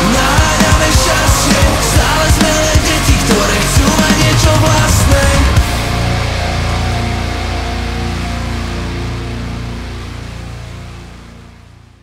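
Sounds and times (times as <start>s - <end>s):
heavy band chord ringing out: 1.0s - 10.3s.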